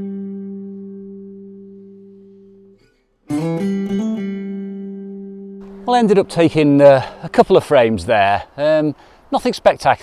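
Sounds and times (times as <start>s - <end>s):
held music chord: 0.0s - 7.5s.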